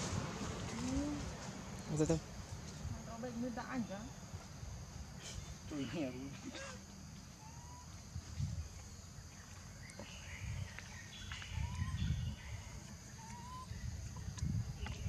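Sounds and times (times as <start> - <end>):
high drone of insects: 0.0 - 15.0.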